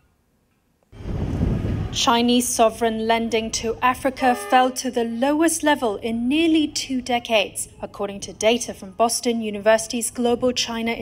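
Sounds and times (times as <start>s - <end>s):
low rumbling noise: 0.9s - 4.2s.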